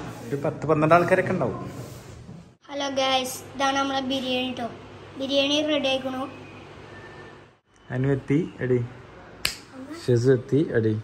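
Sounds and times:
finger snap: 9.4s - 9.7s.

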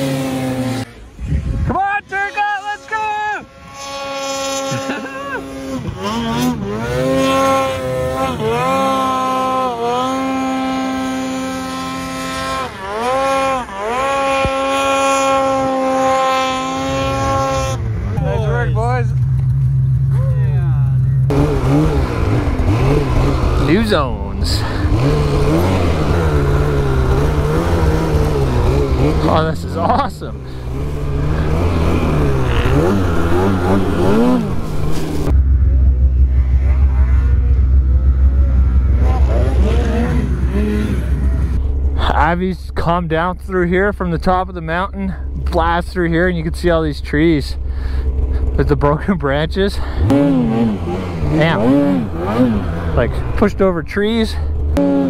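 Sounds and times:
snowmobile engine high revs: 0.0s - 1.5s, 2.3s - 20.2s, 21.3s - 55.0s
snowmobile engine rough note: 0.0s - 55.0s.

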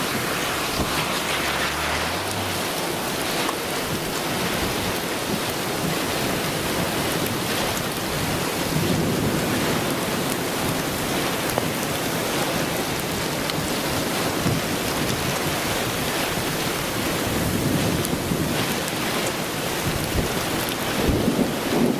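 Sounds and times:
heavy rain: 0.0s - 21.9s
storm winds: 0.0s - 21.9s.

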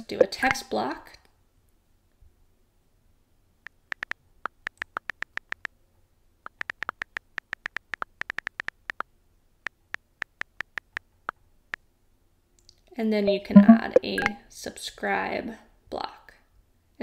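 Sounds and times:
phone keyboard key clicks: 3.7s - 5.7s, 6.5s - 9.0s.

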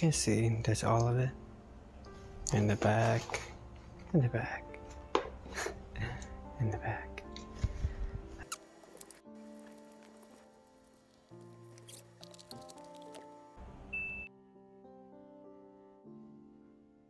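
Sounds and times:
soft background music: 0.0s - 17.0s.

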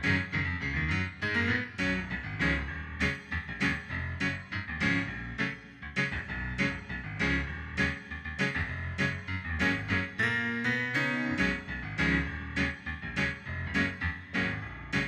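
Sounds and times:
piano music: 0.0s - 15.0s.

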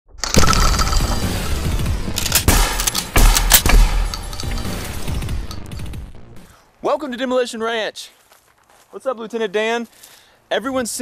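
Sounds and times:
shotgun shells clattering: 0.2s - 1.5s, 2.1s - 6.0s
shattering burst: 0.2s - 5.9s
heavy hits: 0.2s - 6.4s
intro music: 0.2s - 6.5s.

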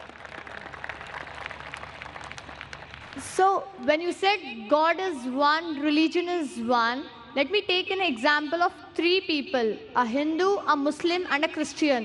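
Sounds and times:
audience applauding: 0.0s - 3.2s.

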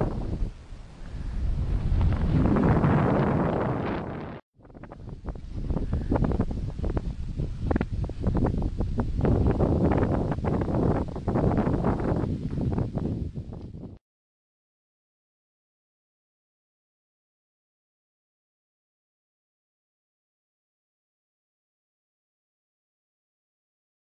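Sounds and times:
wind buffeting microphone: 0.0s - 14.0s.

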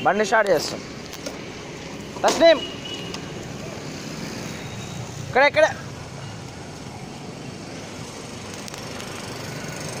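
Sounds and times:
distant traffic hum: 0.0s - 10.0s.

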